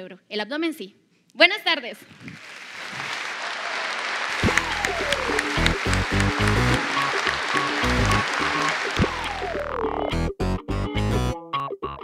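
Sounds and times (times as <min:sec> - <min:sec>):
audience applauding: 0:02.2 - 0:09.9
music with heavy bass beat: 0:09.0 - 0:10.4.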